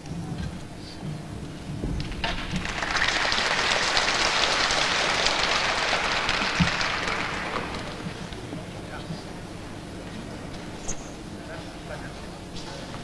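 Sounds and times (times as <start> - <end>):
audience applauding: 2.2 - 8.3.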